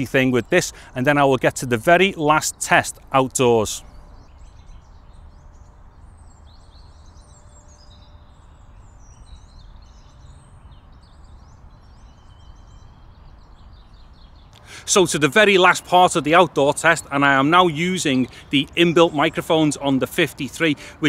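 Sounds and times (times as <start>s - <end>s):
birds chirping and whistling: 2.5s - 21.0s.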